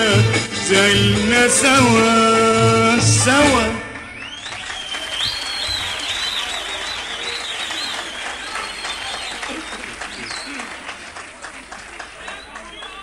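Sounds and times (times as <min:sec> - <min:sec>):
audience applauding: 0:04.0 - 0:13.0
high wavering whistle: 0:04.1 - 0:10.6.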